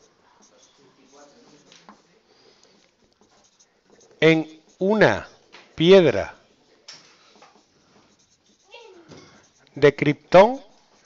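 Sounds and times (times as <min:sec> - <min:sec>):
marker scratching on whiteboard: 0:00.0 - 0:11.0.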